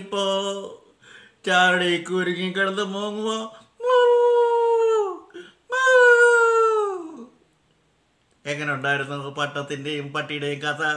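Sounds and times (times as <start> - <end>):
man imitating dog howls: 3.0 - 7.4.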